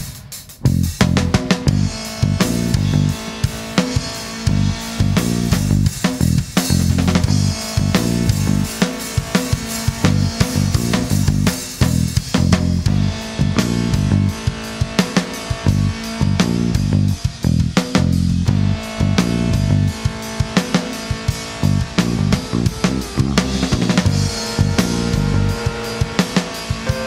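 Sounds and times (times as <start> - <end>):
drum kit beat: 0.0 - 27.0
guitar: 0.0 - 27.0
bass line: 0.5 - 27.0.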